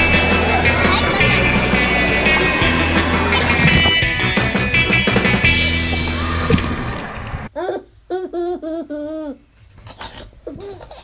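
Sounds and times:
young child laughing: 7.6s - 11.0s.

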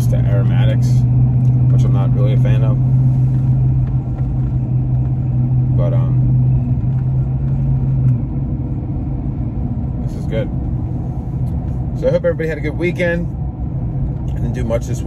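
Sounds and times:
car cabin drone: 0.0s - 15.0s
road rumble: 0.0s - 15.0s.

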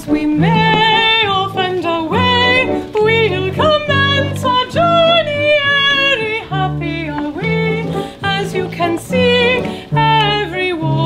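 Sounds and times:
instrumental accompaniment: 0.0s - 11.0s
woman singing with vibrato: 0.0s - 11.0s.

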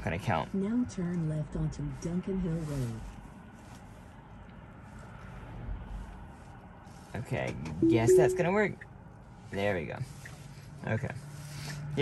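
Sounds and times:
low steady car cabin rumble: 0.0s - 3.2s
finger tapping touchscreen: 7.8s - 8.4s.

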